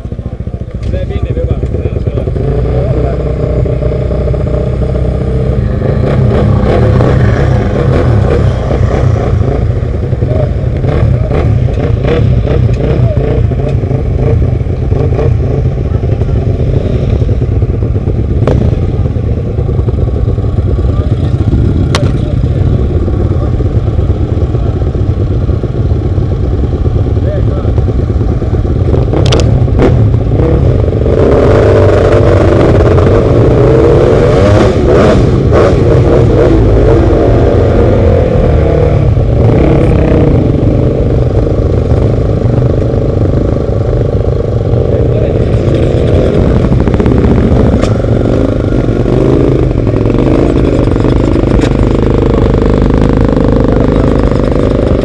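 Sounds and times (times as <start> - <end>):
motorcycle engines idling: 0.0 - 34.0, 34.6 - 55.0
motorcycle engines revving: 0.0 - 55.0.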